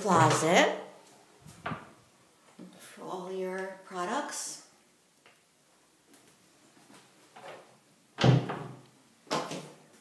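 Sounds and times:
door shutting: 1.5s - 1.9s, 8.2s - 9.7s.

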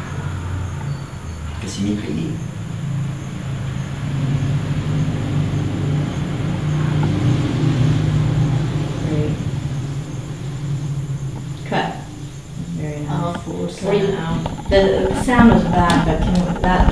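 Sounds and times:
vehicle engine rumbling past: 0.0s - 16.9s.

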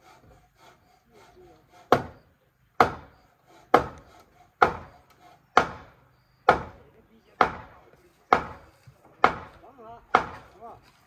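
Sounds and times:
heavy chopping strikes on wood: 1.8s - 2.2s, 2.8s - 3.1s, 3.7s - 6.8s, 7.4s - 10.6s.

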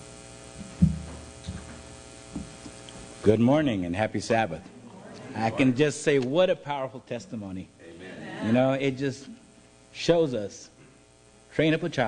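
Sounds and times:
electrical mains hum: 0.0s - 12.0s
low thumps: 0.6s - 2.6s.

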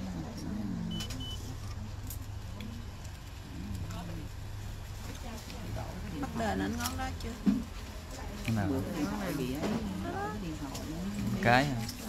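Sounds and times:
faint voices: 0.0s - 12.0s
short high beeps: 0.9s - 1.5s.

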